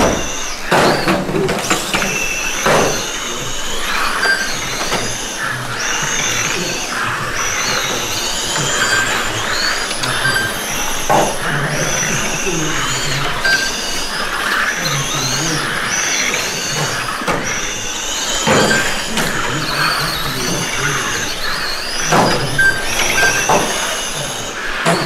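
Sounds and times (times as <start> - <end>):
electric model car motors whining: 0.0 - 25.0.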